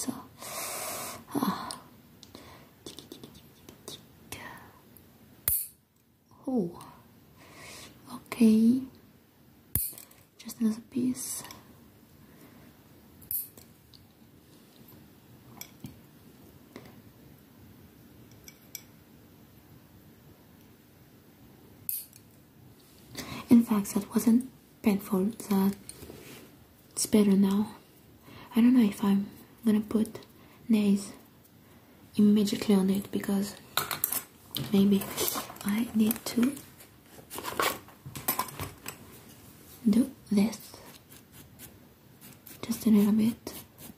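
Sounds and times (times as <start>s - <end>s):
nail clippers clipping fingernail: 5.5s - 5.8s
fabric case rustling: 34.6s - 39.0s.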